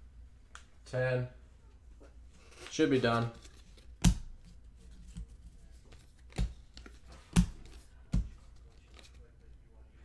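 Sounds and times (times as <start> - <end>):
cards tapping onto a stack: 3.1 - 9.2.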